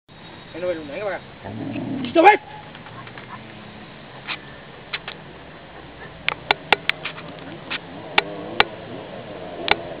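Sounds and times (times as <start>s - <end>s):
motorcycle engines rumbling: 0.1s - 10.0s.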